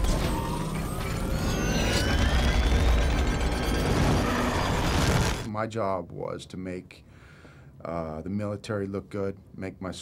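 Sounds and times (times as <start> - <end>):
mechanical whirring and clanking: 0.0 - 5.5
whining tones sliding in pitch: 0.0 - 5.5.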